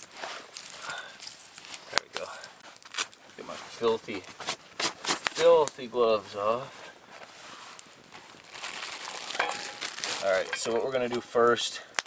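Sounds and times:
plastic bag crinkling: 0.0 - 5.8, 6.8 - 11.9.

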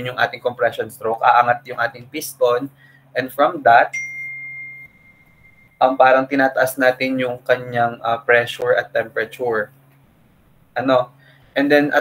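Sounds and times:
bell-like ding: 3.9 - 6.1.

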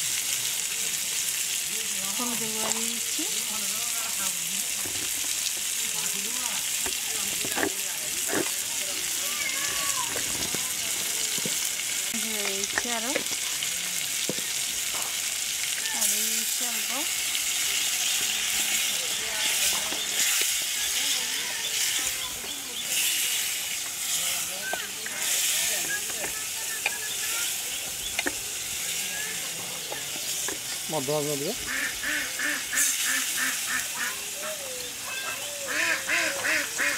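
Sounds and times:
prawns sizzling in hot oil: 0.0 - 36.9
spatula stirring in a pot: 14.1 - 30.9.

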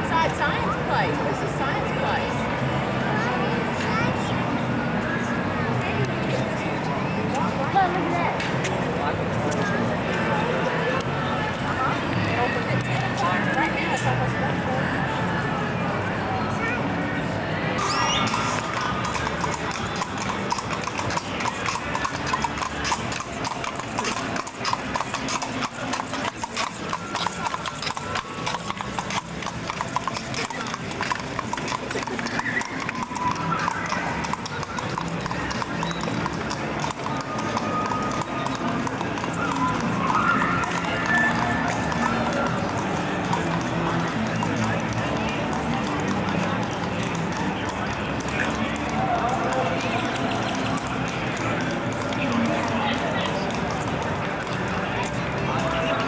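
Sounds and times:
horse hooves clip-clopping on pavement: 0.0 - 15.9, 17.8 - 56.0
voices: 0.0 - 56.0.

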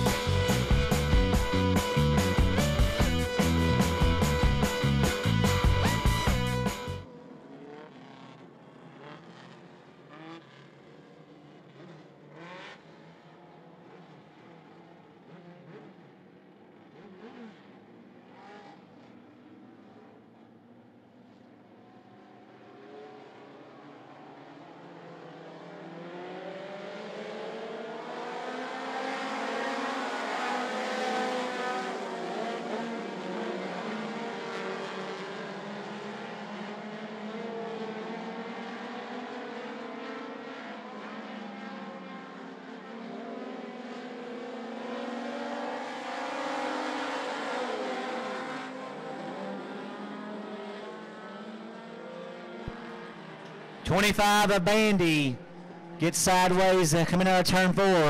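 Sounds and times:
racing car engines revving: 0.0 - 20.5, 21.3 - 58.0.

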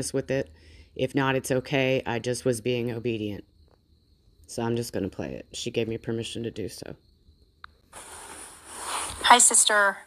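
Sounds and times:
steady recording hiss: 0.0 - 10.0.

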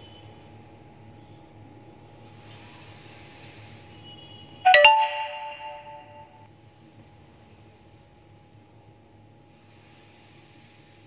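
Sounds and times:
bell-like chime: 4.7 - 6.3.

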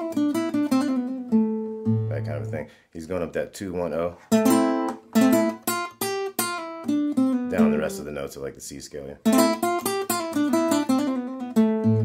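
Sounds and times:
acoustic guitar plucked notes: 0.0 - 2.6, 4.3 - 8.4, 9.2 - 12.0.

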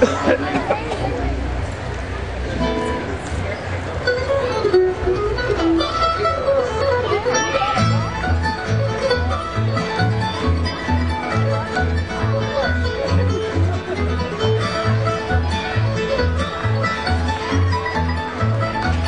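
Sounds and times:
fast picked mandolin: 0.0 - 19.0
plucked upright bass: 0.0 - 19.0
acoustic guitar: 2.5 - 19.0.

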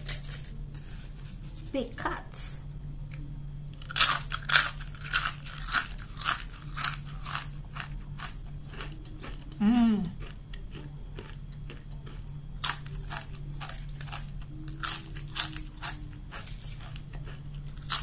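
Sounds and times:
potato chip crunching and chewing: 3.8 - 18.0.

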